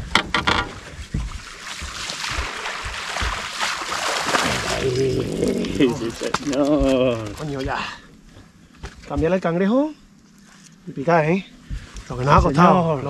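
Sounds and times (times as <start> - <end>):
fish thrashing and water splashing: 0.7 - 7.8.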